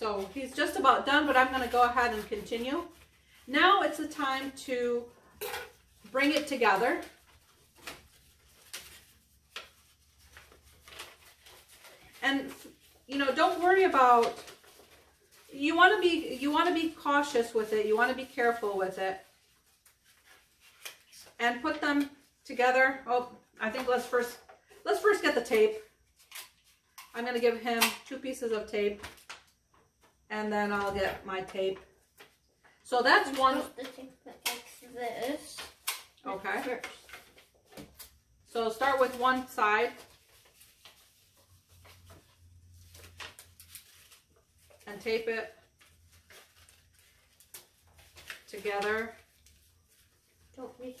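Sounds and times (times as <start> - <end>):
paper rustling and crinkling: 0.0 - 22.4, 33.1 - 51.0.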